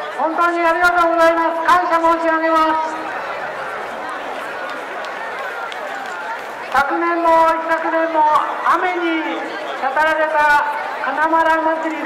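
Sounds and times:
large crowd chattering: 0.0s - 12.0s.

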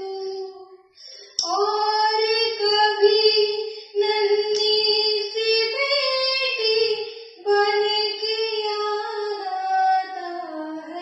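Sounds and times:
breath: 0.9s - 1.4s, 3.6s - 4.0s, 7.1s - 7.4s.

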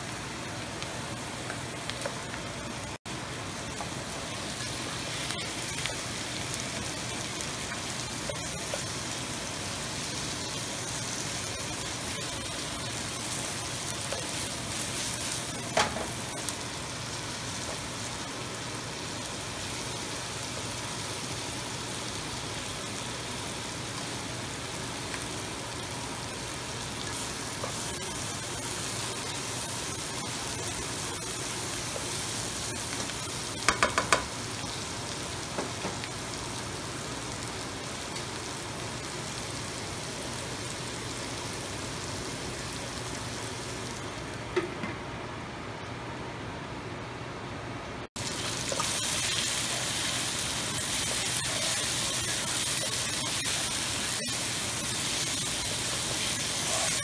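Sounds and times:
food sizzling in oil: 0.0s - 44.4s, 48.2s - 57.0s.

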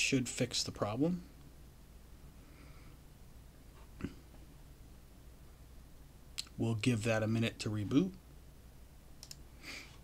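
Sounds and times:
computer mouse clicks: 9.2s - 9.4s.

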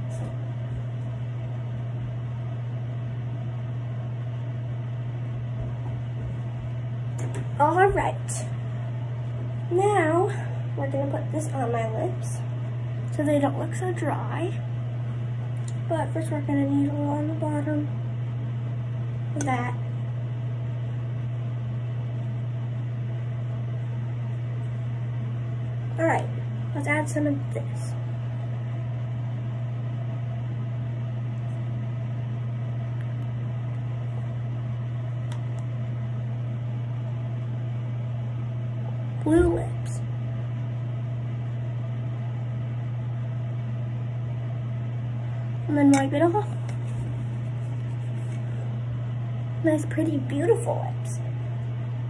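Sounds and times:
machine humming: 0.0s - 52.0s.

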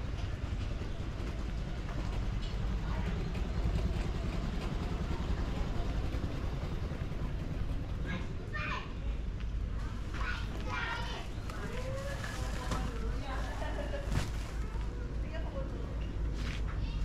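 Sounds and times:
vehicle engine rumbling: 9.5s - 17.0s.

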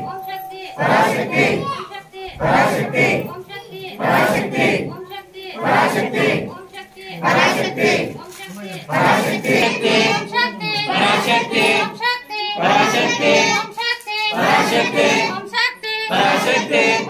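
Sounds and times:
group chanting: 0.0s - 17.0s.

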